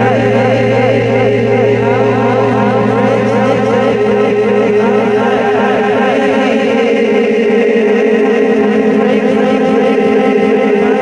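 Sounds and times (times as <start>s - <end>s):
siren-like warbling tones: 0.0s - 6.9s
low drone: 0.0s - 11.0s.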